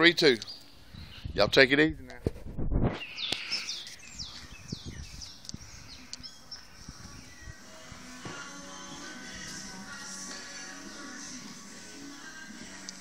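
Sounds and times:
songbirds chirping: 0.0 - 2.2, 3.0 - 13.0
low rumble on microphone: 2.2 - 3.0.

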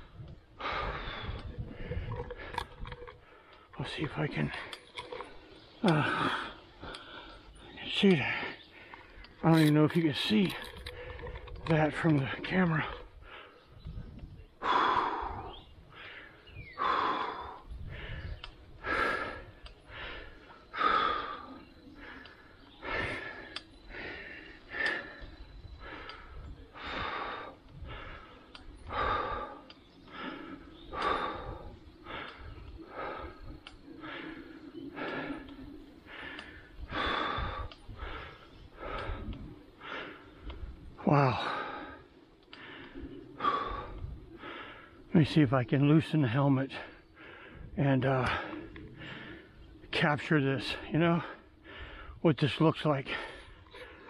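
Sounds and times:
cyclist breathing hard: 0.0 - 54.0
low wind: 0.0 - 54.0.

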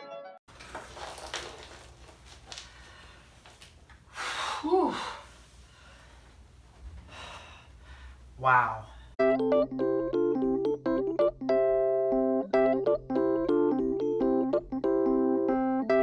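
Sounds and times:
music: 0.0 - 0.4, 9.2 - 16.0
faint rustles and clicks: 0.5 - 4.0
man sighing: 4.2 - 5.3.

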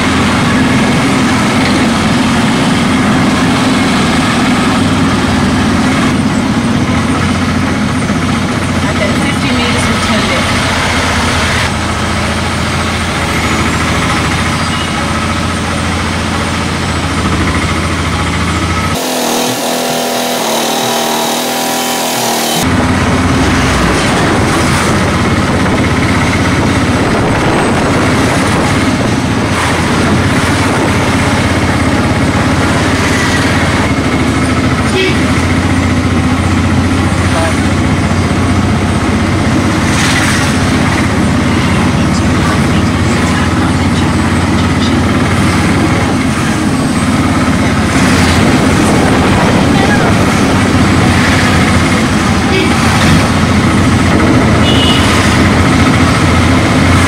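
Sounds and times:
road noise: 0.0 - 57.0
vehicle engine hum: 0.0 - 57.0.

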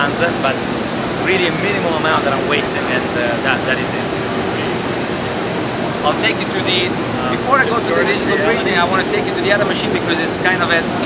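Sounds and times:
indistinct voices: 0.0 - 0.6, 1.2 - 5.0, 6.0 - 11.0
machines and ventilation hum: 0.0 - 11.0.

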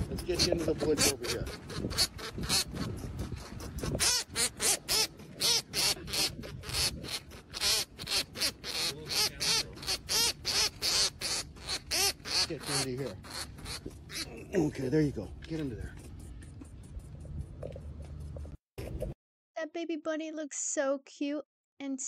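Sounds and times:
baby rabbit squealing: 0.0 - 15.0.

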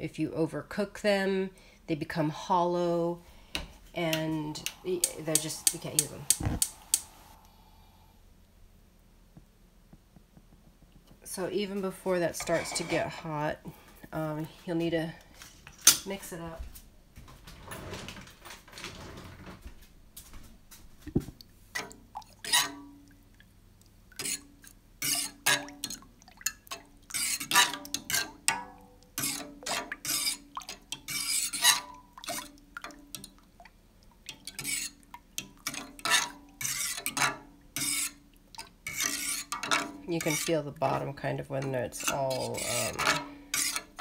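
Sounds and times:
faint steady hum: 0.2 - 17.5
utensil scraping enamel pot: 4.0 - 7.4, 12.2 - 13.5, 21.7 - 23.1, 24.1 - 33.6, 34.2 - 44.0.

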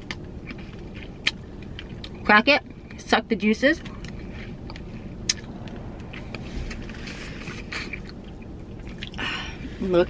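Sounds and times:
low cabin hum: 0.0 - 10.0
person sucking and chewing: 4.0 - 9.3.

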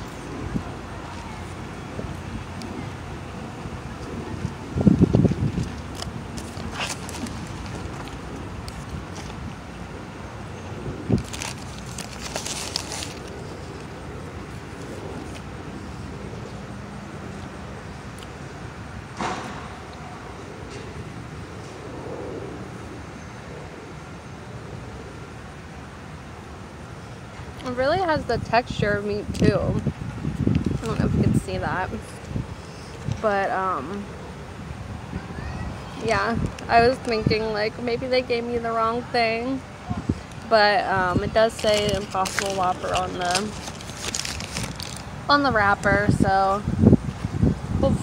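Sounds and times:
outdoor background noise: 0.0 - 48.0
paper wrapper crinkling: 5.5 - 9.4, 11.1 - 13.9, 41.5 - 45.2.

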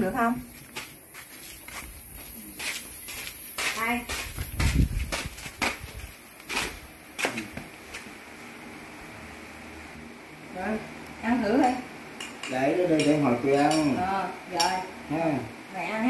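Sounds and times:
footsteps on tiled floor: 0.0 - 8.2.

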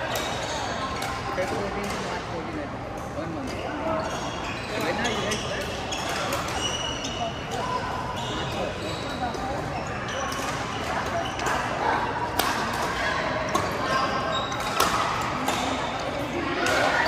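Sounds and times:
people talking: 0.0 - 17.0
shoes squeaking on court floor: 3.5 - 11.8, 13.4 - 17.0.

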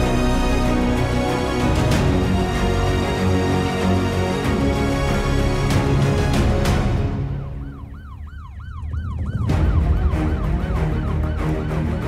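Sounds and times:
theme music: 0.0 - 12.0
rapid rising and falling siren: 5.8 - 12.0.

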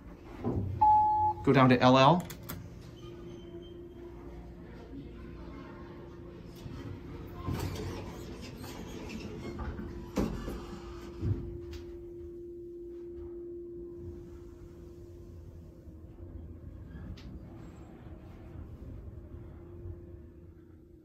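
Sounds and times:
elevator hum: 0.0 - 21.0
elevator doors sliding closed: 6.6 - 11.6.

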